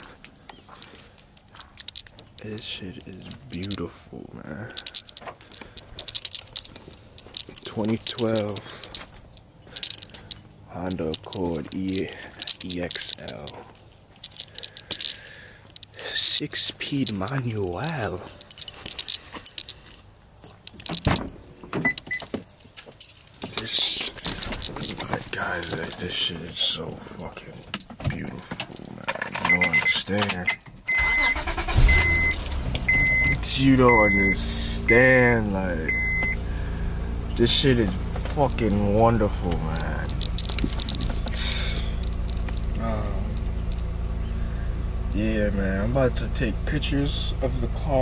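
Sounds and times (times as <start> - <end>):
phone handling rustle: 0.0 - 16.0, 37.3 - 44.2
car keys jangling: 0.0 - 26.9, 28.2 - 48.0
car engine idling: 31.0 - 48.0.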